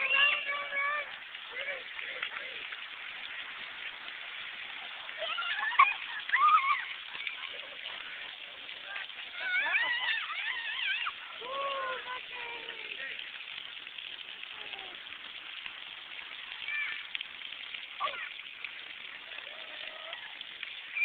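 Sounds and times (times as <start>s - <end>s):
water sprayers hissing: 0.0s - 21.0s
child squealing and babbling: 5.2s - 7.2s, 8.9s - 12.8s, 16.6s - 17.1s, 18.0s - 18.4s, 19.4s - 21.0s.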